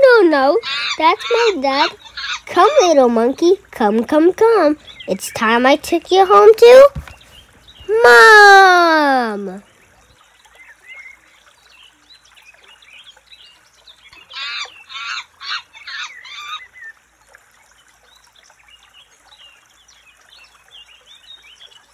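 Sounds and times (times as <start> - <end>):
bird honking calls: 0.6 - 2.9, 14.2 - 16.8.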